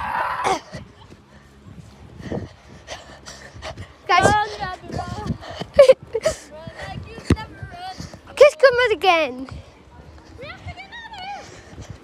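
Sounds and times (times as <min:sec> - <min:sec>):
person breathing hard: 0:01.4 - 0:07.1.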